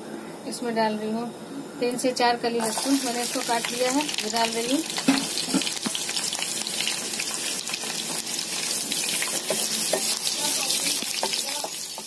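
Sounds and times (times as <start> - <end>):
garlic sizzling in hot oil: 2.6 - 12.0.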